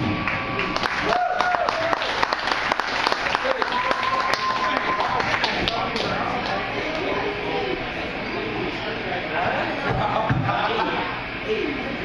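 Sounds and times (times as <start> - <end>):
audience clapping: 0.0 - 7.1
audience shouting: 3.4 - 5.6.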